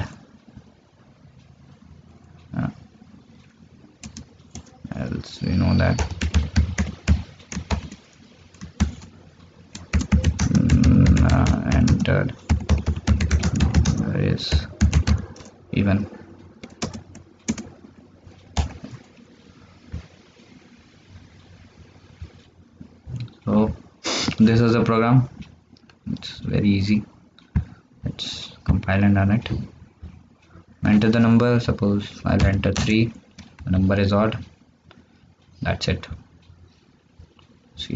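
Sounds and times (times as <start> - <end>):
faint room hum and hiss: 0.0 - 37.9
computer keyboard key presses: 4.0 - 4.7, 6.0 - 8.0, 9.7 - 15.6, 16.6 - 17.7
person saying uh: 10.5 - 12.3.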